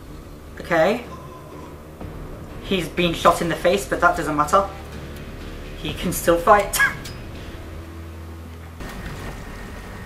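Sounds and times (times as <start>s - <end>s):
steady low hum: 0.0s - 10.0s
motorboat running across water: 8.8s - 10.0s.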